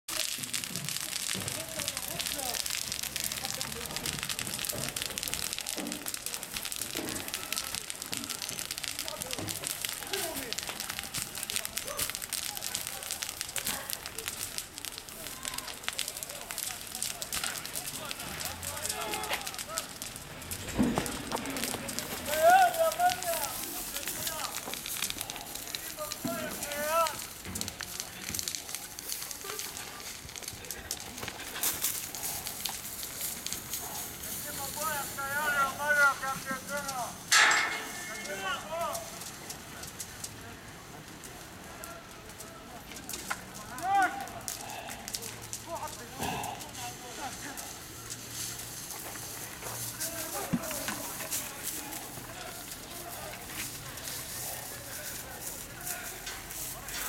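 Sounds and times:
grass fire crackling: 0:00.0 - 0:57.0
voices calling out: 0:00.2 - 0:57.0.

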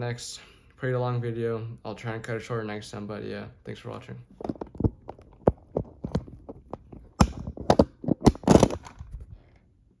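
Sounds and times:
phone handling knocks and rubs: 0:04.4 - 0:09.0.

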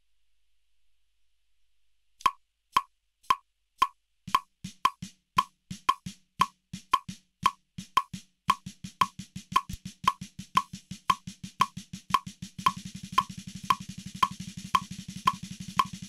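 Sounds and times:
snare drum triplet strokes: 0:04.3 - 0:16.0.

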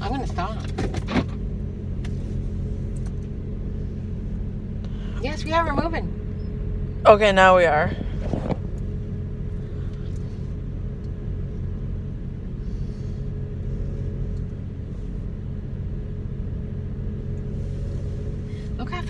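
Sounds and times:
car engine drone inside cabin: 0:00.0 - 0:19.0.

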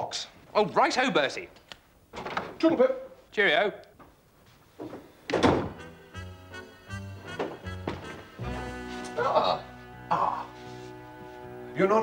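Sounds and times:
door shutting with a thunk: 0:04.8 - 0:05.8
background music with bass notes: 0:05.6 - 0:12.0.

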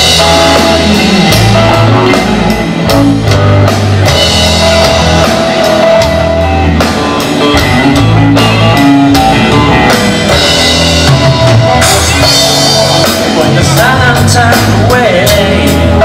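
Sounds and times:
drum kit hits: 0:00.0 - 0:16.0
electric guitars: 0:00.0 - 0:16.0.

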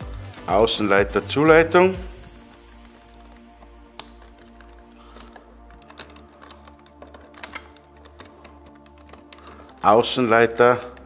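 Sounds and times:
soft background music: 0:00.0 - 0:11.0
wire connector clicks: 0:03.7 - 0:09.9.

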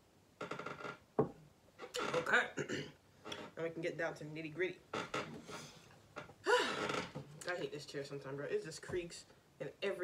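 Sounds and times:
chair creaking: 0:00.4 - 0:02.4, 0:03.2 - 0:03.6, 0:04.9 - 0:07.6.

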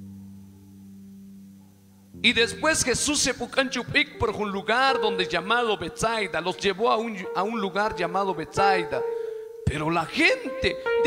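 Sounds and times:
soft sustained chord: 0:00.0 - 0:03.6, 0:04.2 - 0:11.0.

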